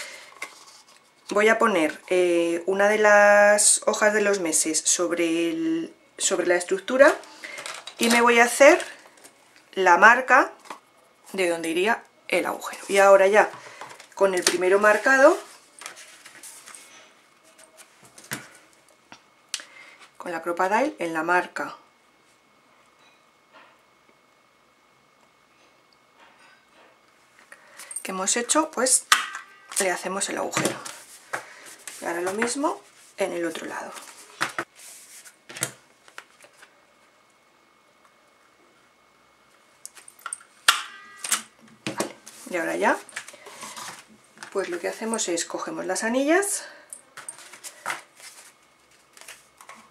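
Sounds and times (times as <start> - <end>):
card sheets rustling: 12.9 - 18.6, 30.6 - 36.7, 42.1 - 45.1, 47.2 - 49.9
paper handling: 13.8 - 18.6, 47.2 - 49.9.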